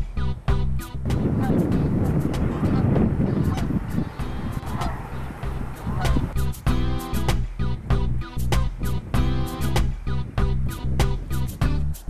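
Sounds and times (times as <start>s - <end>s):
wind rumbling on microphone: 0.0s - 11.7s.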